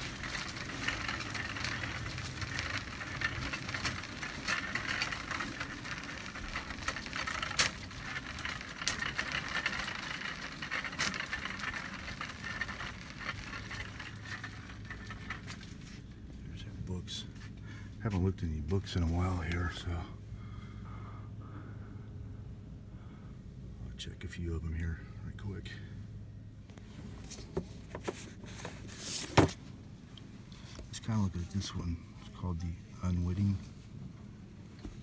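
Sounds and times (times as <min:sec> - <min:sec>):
cart clicks: 0:00.0 - 0:16.0
shopping cart rolling on hard floor: 0:00.0 - 0:16.1.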